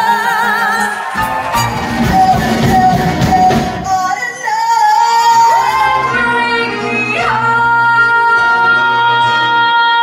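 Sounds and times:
band accompaniment: 0:00.0 - 0:09.4
woman singing: 0:00.0 - 0:10.0.

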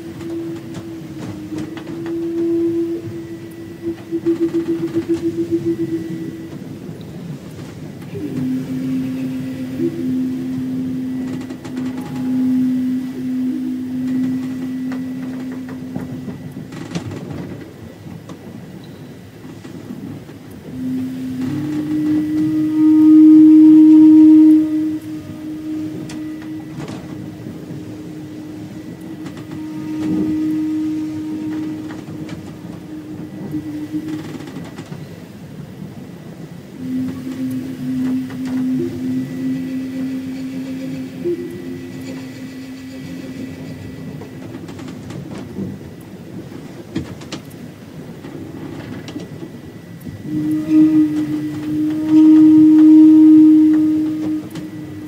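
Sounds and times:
flute playing long low notes: 0:00.0 - 0:55.0
steady rumbling noise with clicks: 0:00.0 - 0:55.0.

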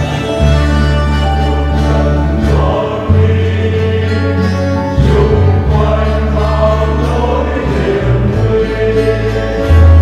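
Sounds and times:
church choir singing a hymn: 0:00.0 - 0:10.0
instrumental accompaniment: 0:00.0 - 0:10.0.

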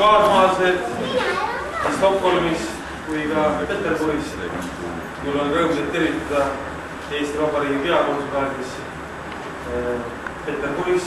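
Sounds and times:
man talking: 0:00.0 - 0:01.0, 0:02.0 - 0:09.0, 0:09.6 - 0:11.0.

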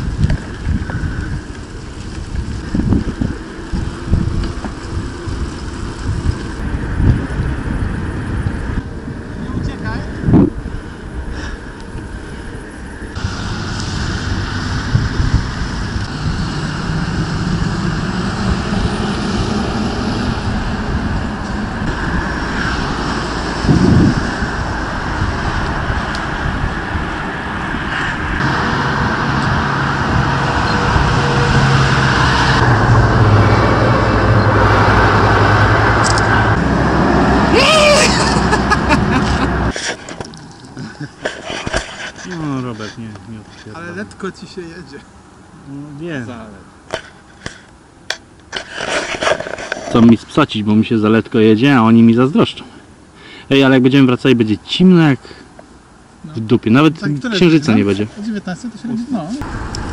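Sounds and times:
wind buffeting microphone: 0:00.0 - 0:42.3, 0:59.4 - 0:59.9
passing cars and truck: 0:00.0 - 0:59.9.

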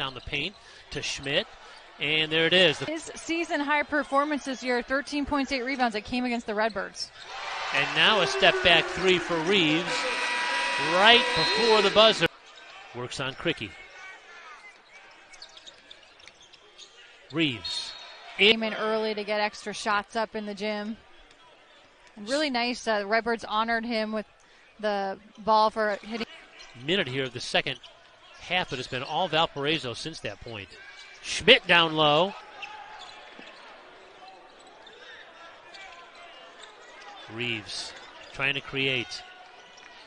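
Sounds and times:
low arena hum: 0:07.5 - 0:12.3
sneaker squeaks: 0:14.6 - 0:18.3, 0:32.4 - 0:37.3.

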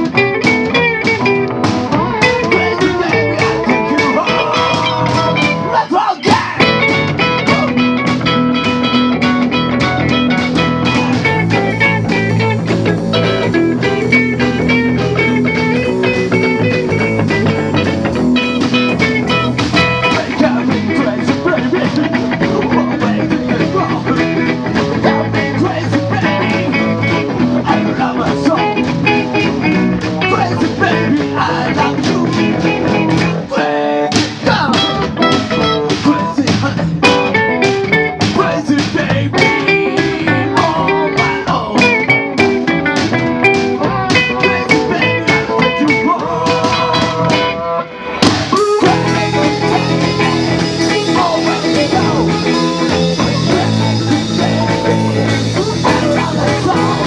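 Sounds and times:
electric guitars: 0:00.0 - 0:57.0
live rock band playing: 0:00.0 - 0:57.0.

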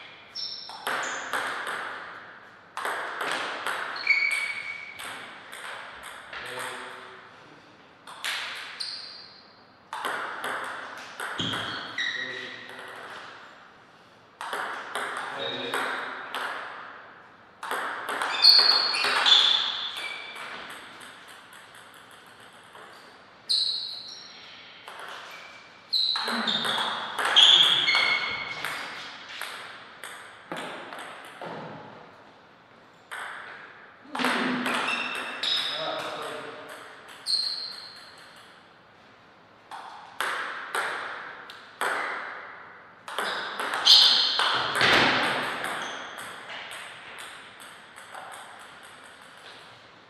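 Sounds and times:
table tennis ball clicks: 0:09.9 - 0:11.7, 0:19.9 - 0:23.1, 0:33.1 - 0:38.6.

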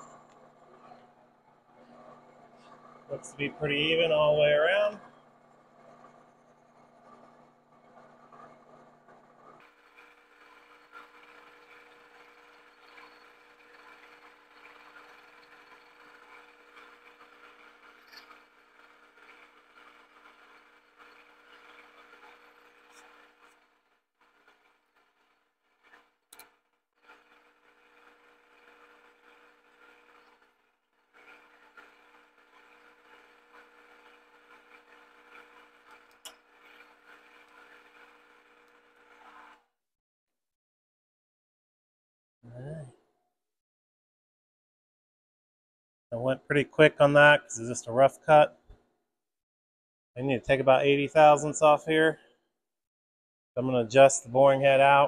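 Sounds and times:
milling machine spindle hum: 0:00.0 - 0:39.6.

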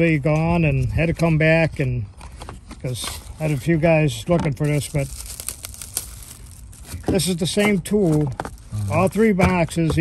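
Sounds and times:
plastic sleeve crinkling: 0:02.3 - 0:09.4.

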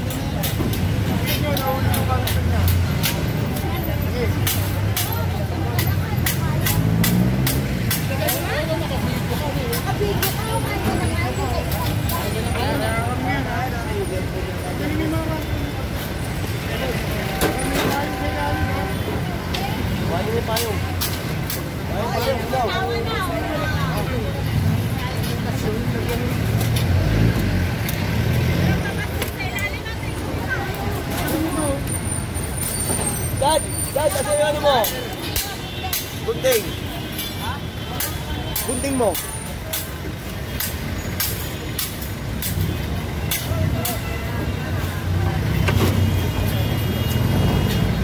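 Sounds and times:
people talking: 0:00.0 - 0:32.0, 0:33.0 - 0:48.0.

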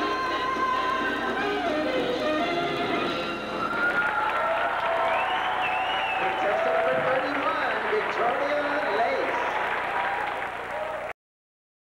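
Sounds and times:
audience applauding: 0:03.6 - 0:11.2.

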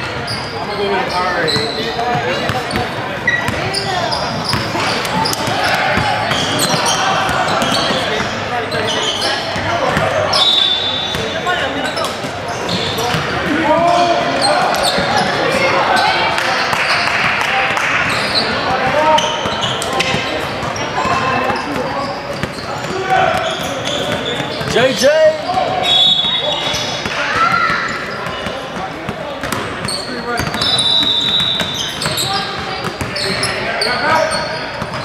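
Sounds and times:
players talking and calling: 0:00.0 - 0:35.0
basketballs bouncing on hardwood: 0:29.4 - 0:33.1.

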